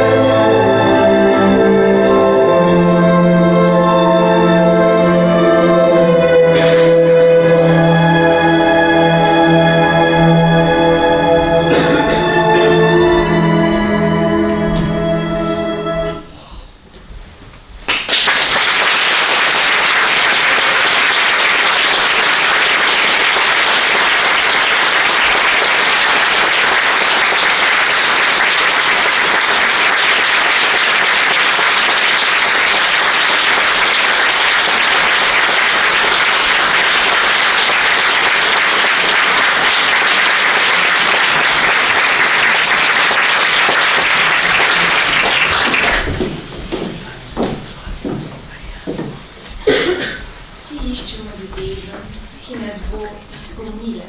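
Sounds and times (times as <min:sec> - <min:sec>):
audience applauding: 0:08.6 - 0:13.6, 0:17.9 - 0:50.2.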